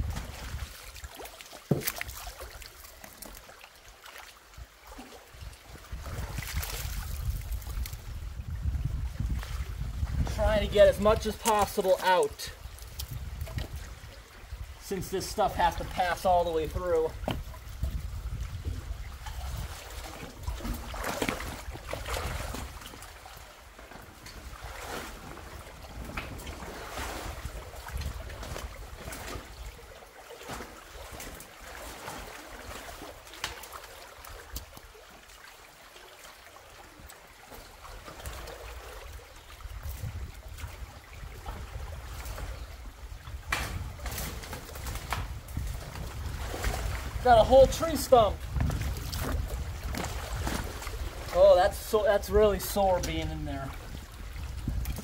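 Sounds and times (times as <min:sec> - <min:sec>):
water splashing and dripping: 0:00.0 - 0:55.0
wood knocking and scraping: 0:01.7 - 0:02.0.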